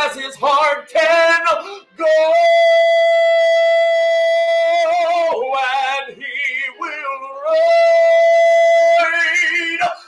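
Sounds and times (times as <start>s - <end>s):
man singing a long high note: 0.0s - 10.0s.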